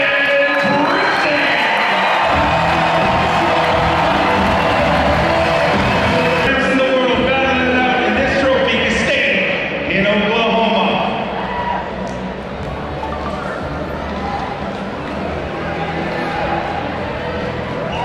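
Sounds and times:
crowd cheering: 0:00.0 - 0:08.2, 0:13.2 - 0:18.0
music with heavy bass: 0:02.3 - 0:06.6.

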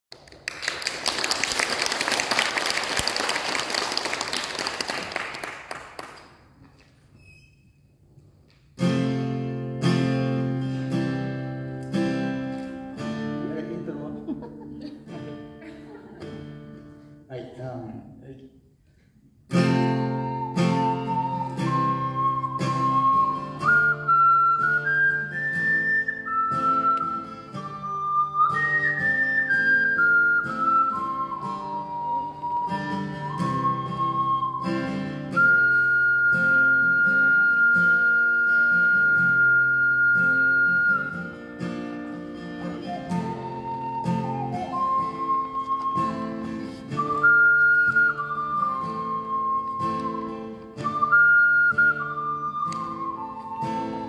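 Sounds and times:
acoustic guitar accompaniment: 0:02.8 - 0:18.1, 0:18.7 - 0:54.0
ocarina melody: 0:19.5 - 0:54.0.

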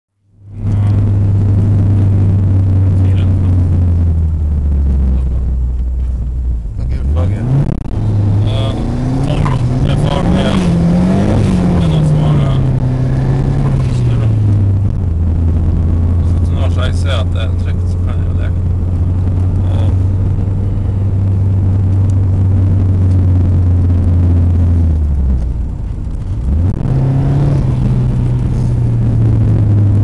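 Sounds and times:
car engine revving: 0:00.3 - 0:30.0.

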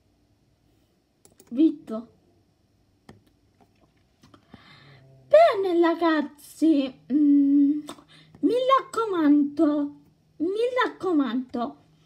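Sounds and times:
computer mouse click: 0:01.2 - 0:01.6.

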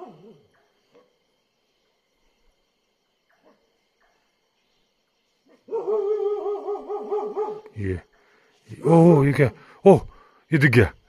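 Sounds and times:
dog howling: 0:05.7 - 0:07.7.

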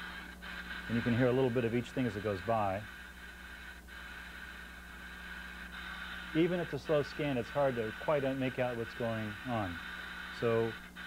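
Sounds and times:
faint radio static: 0:00.0 - 0:11.0
steady low hum: 0:00.0 - 0:11.0.

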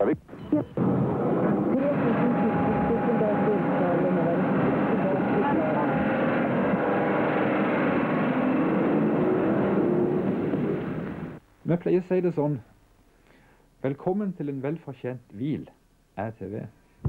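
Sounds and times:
voices: 0:01.4 - 0:06.3.

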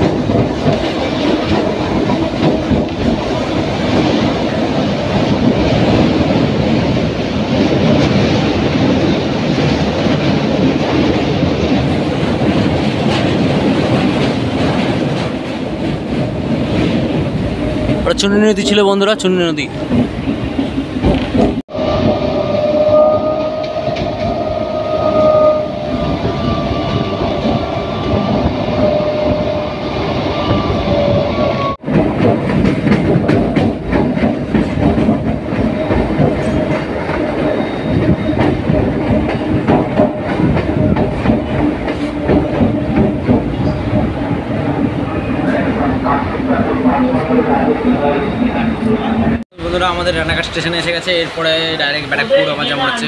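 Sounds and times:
train wheel clicks: 0:00.0 - 0:21.6, 0:31.9 - 0:45.7
train rumbling on track: 0:00.0 - 0:53.0.

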